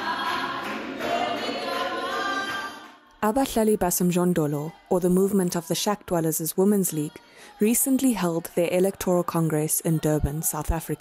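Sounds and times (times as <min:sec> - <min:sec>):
women's choir singing: 0:00.0 - 0:11.0.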